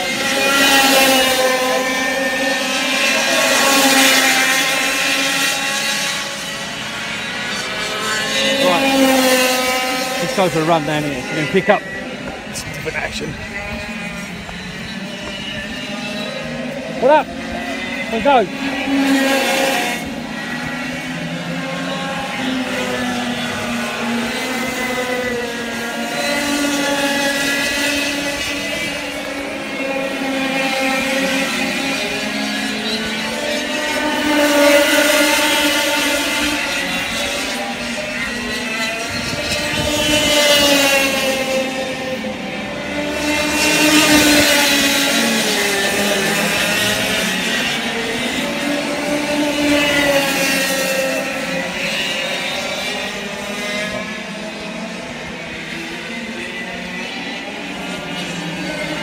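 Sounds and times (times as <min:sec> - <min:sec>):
racing kart engines passing: 0:00.0 - 0:59.0.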